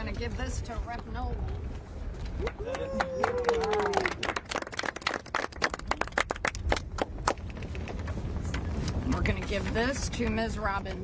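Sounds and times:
small group clapping: 2.4s - 8.0s.

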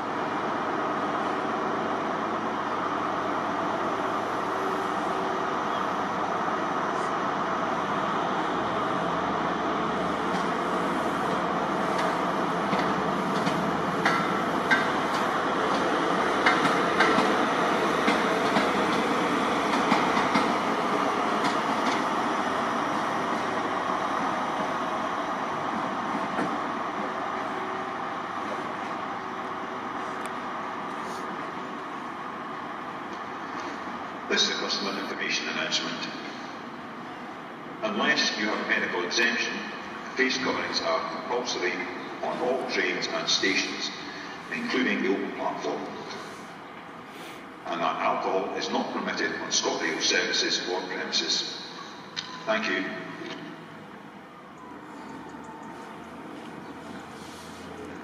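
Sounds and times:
diesel train engines running: 0.0s - 58.0s
train wheels clicking over rail joints: 11.9s - 20.6s.

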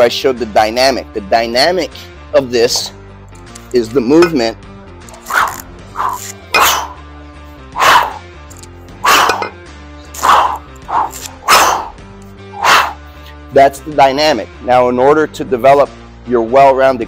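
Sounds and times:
background music: 0.0s - 17.0s
sharp forceful breaths: 5.1s - 7.0s, 7.6s - 8.3s, 9.0s - 9.5s, 10.1s - 13.3s.

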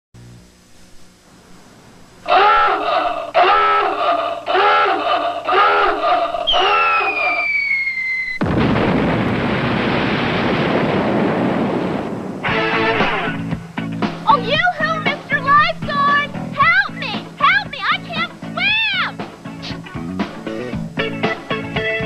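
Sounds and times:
rising and falling calls: 2.1s - 8.4s
falling whistle sound effect: 6.4s - 8.4s
big splash into pool: 8.3s - 13.4s.

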